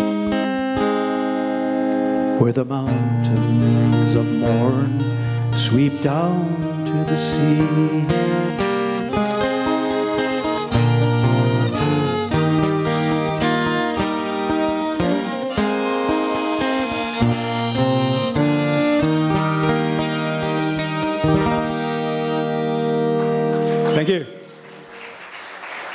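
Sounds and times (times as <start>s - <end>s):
harmonica melody: 0.0s - 2.4s, 3.0s - 24.2s
strummed acoustic guitar: 0.0s - 24.0s
bowed fiddle: 8.3s - 23.9s.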